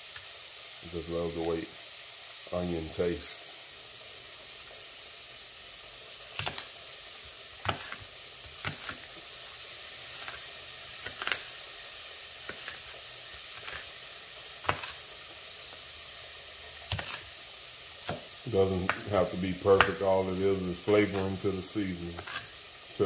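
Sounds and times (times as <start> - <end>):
meat sizzling in a pan: 0.0 - 23.0
knife tapping cutting board: 18.8 - 19.1, 19.8 - 20.0.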